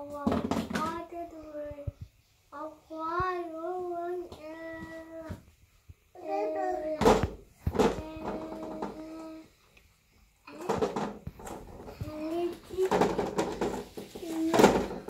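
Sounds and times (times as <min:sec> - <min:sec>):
child singing and babbling: 0:00.0 - 0:05.4, 0:06.2 - 0:09.6, 0:10.5 - 0:11.0, 0:11.8 - 0:13.6, 0:14.2 - 0:15.0.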